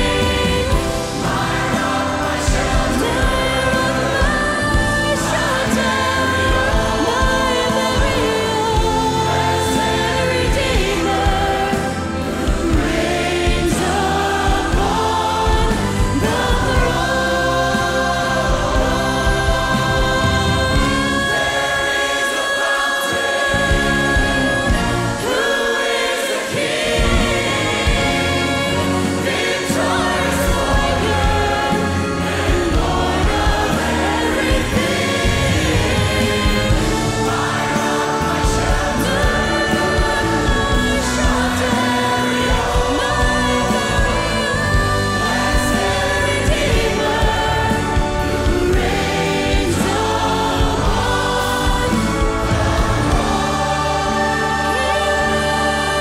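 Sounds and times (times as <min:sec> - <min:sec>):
band playing: 0:00.0 - 0:56.0
choir singing: 0:00.0 - 0:56.0
woman singing: 0:00.0 - 0:56.0.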